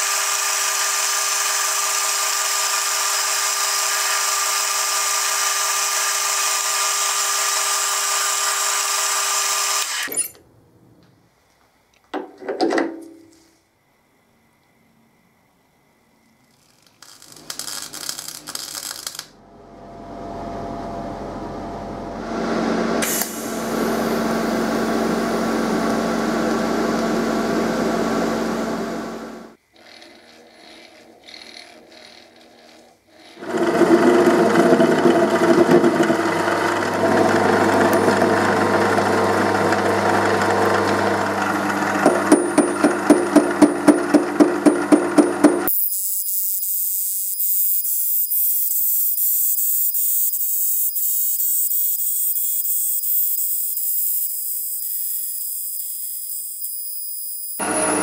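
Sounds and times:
metal lathe cutting metal: 0.0 - 10.2, 33.1 - 43.6, 44.3 - 58.0
high-pitched lathe cutting sound: 0.0 - 10.3, 45.6 - 58.0
sharp regular ticks: 16.4 - 19.4
welding arc buzzing: 16.7 - 19.4, 45.2 - 58.0.

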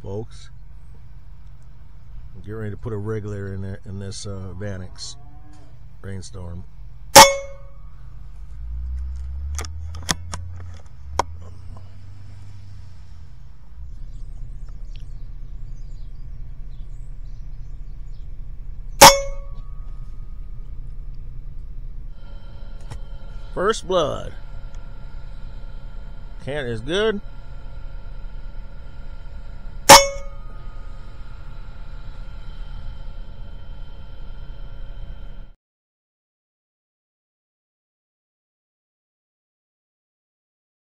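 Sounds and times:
low handling rumble: 0.0 - 35.5
air rifle shot with metallic ring: 7.2 - 7.8, 19.0 - 19.8, 29.9 - 30.7.

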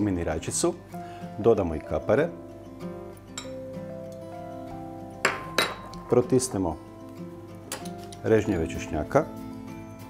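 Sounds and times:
acoustic guitar music: 0.0 - 10.0
spoon clinking on glass bowl: 3.4 - 3.6, 5.2 - 6.0.

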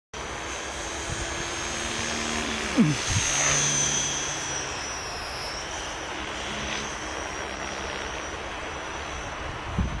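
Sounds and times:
rc helicopter high whine: 0.2 - 10.0.

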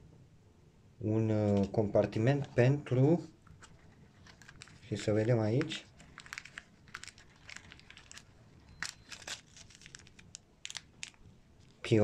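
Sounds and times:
plastic and cardboard rustles: 3.5 - 11.9.

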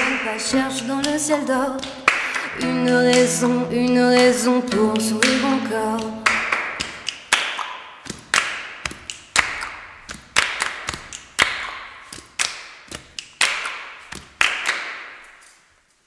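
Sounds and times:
group hand claps: 0.0 - 3.5, 4.1 - 15.2.

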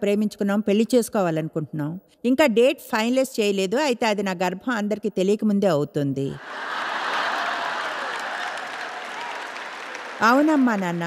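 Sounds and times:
audience laughing: 6.4 - 10.0
audience applauding: 6.4 - 11.0.

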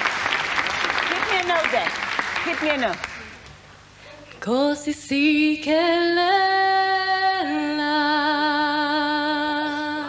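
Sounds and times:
woman singing unaccompanied: 4.4 - 10.0.

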